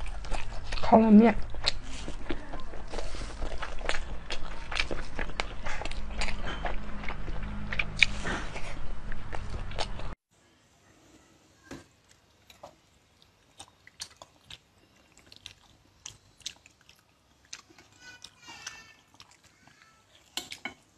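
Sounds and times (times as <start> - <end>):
chewing and lip smacking: 0.0 - 10.2, 12.1 - 20.7
low hum: 0.0 - 10.2.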